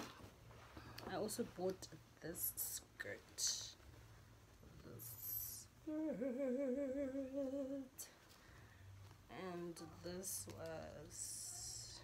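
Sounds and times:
woman humming a long note: 0:05.8 - 0:07.8.

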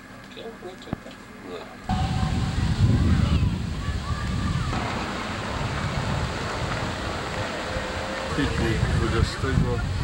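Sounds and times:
wind buffeting microphone: 0:01.9 - 0:10.0.

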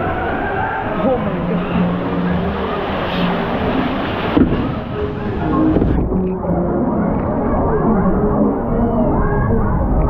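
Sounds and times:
rushing water: 0:00.0 - 0:10.0.

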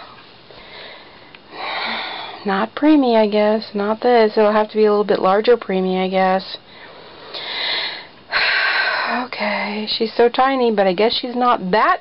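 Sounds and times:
woman breathing: 0:00.0 - 0:02.4, 0:06.6 - 0:09.9
woman speaking: 0:01.8 - 0:06.6, 0:09.0 - 0:12.0
breathy sniff: 0:06.8 - 0:09.2.

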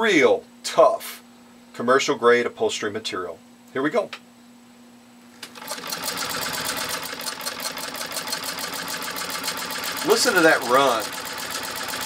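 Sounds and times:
sewing machine stitching: 0:05.4 - 0:12.0.

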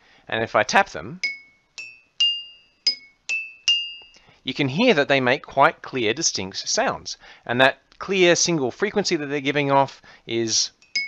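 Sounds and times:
mugs and glass tapped ringing: 0:01.2 - 0:04.2.

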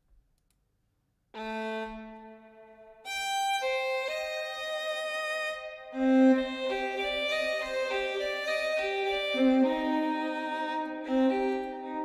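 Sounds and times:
sustained violin notes with reverb: 0:01.4 - 0:12.0.

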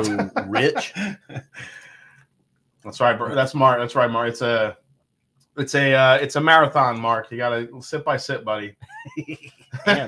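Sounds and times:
man laughing: 0:00.0 - 0:01.8, 0:08.8 - 0:10.0
man speaking: 0:00.0 - 0:01.8, 0:02.8 - 0:04.8, 0:05.6 - 0:10.0.

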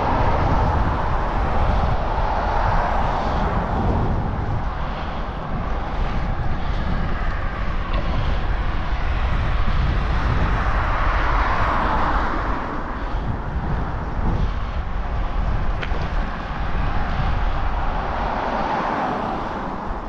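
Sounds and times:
vehicle passing: 0:00.0 - 0:20.0
wind rumbling on microphone: 0:00.0 - 0:20.0.

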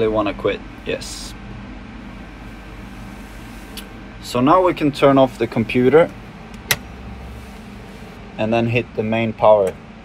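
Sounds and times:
steady low hum: 0:00.0 - 0:10.0
dashboard switch click: 0:06.5 - 0:06.9.

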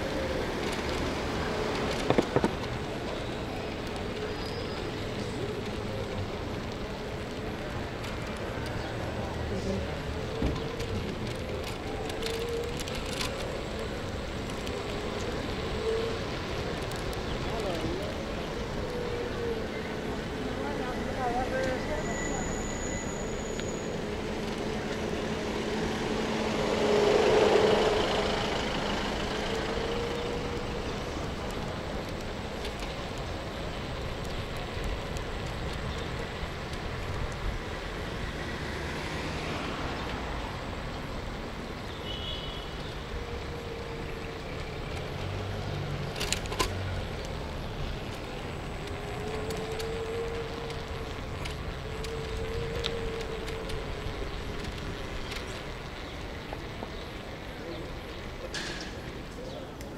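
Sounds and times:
van passing by: 0:00.0 - 0:32.5
road traffic: 0:00.0 - 0:59.9.

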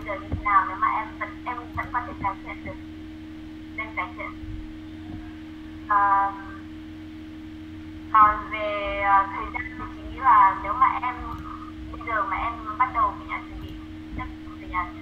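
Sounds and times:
person speaking over video call: 0:00.0 - 0:02.8, 0:03.8 - 0:04.4, 0:08.2 - 0:15.0
steady hum: 0:00.0 - 0:15.0.

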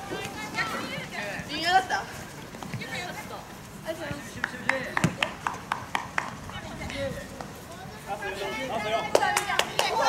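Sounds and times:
sharp hand claps: 0:04.4 - 0:06.4, 0:09.1 - 0:10.0.

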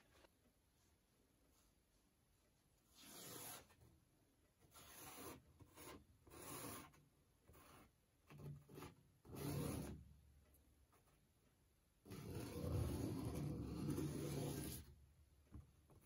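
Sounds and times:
drawing stick scratching canvas: 0:02.9 - 0:03.9, 0:04.6 - 0:10.2, 0:12.0 - 0:15.0
rubbing on canvas: 0:12.1 - 0:14.9.

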